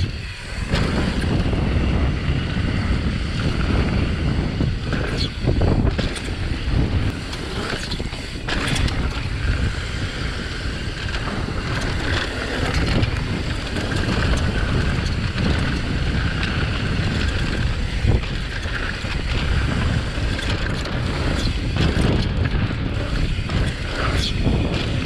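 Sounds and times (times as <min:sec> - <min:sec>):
bike knocks and rattles: 0:00.0 - 0:25.0
bike tyre noise on dirt: 0:00.0 - 0:25.0
wind buffeting microphone: 0:00.0 - 0:25.0.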